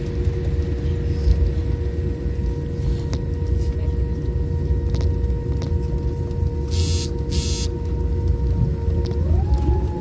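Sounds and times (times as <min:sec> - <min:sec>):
airliner cabin rumble: 0:00.0 - 0:10.0
jet engine whine: 0:00.0 - 0:10.0.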